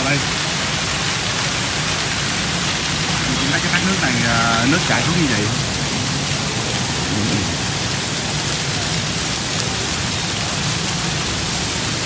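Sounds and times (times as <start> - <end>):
waterfall splashing into pool: 0.0 - 12.0.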